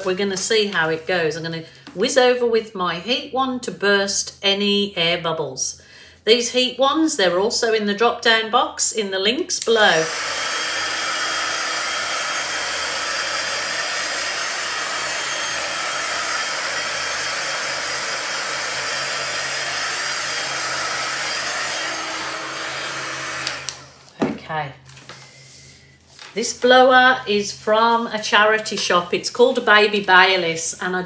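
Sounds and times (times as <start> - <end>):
heat gun blowing air: 9.6 - 24.1.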